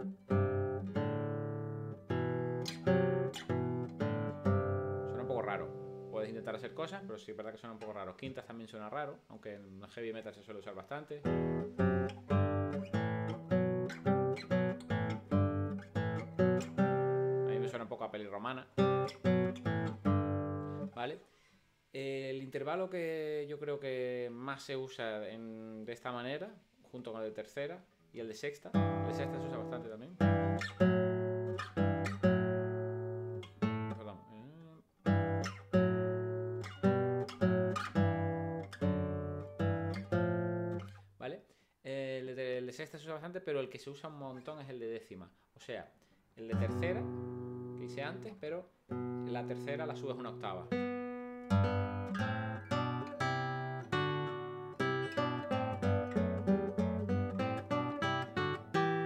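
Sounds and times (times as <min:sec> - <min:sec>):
classical guitar plucking: 0:00.0 - 0:06.9, 0:11.2 - 0:17.8, 0:18.6 - 0:20.9, 0:28.7 - 0:41.0, 0:46.5 - 0:59.0.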